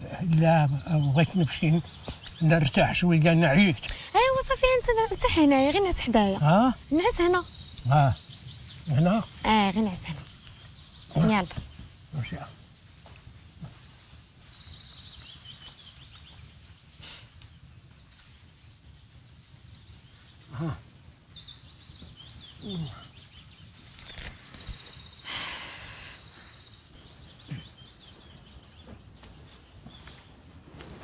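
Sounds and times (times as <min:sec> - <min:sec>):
small birds trilling: 0:00.0 - 0:31.0
person sighing: 0:20.5 - 0:20.8.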